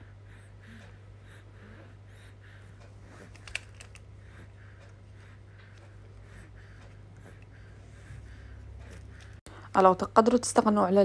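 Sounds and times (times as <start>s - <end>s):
steady low hum: 0.0s - 11.0s
small clicks: 3.3s - 4.0s.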